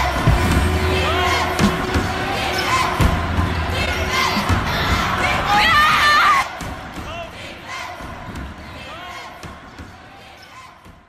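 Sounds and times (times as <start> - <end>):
crowd voices: 0.0 - 11.0.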